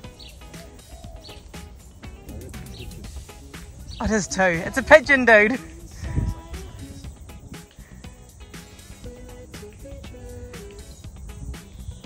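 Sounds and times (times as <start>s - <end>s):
pigeon cooing: 0.0s - 5.0s
background music: 0.0s - 12.0s.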